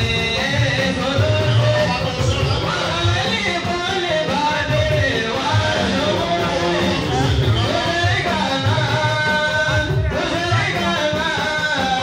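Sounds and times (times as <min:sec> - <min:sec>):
men singing a chant: 0:00.0 - 0:12.0.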